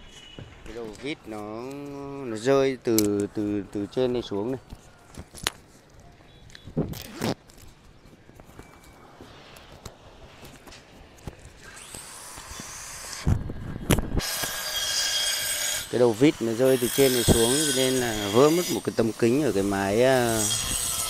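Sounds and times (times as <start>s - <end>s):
loud steady rasping: 14.2s - 21.0s.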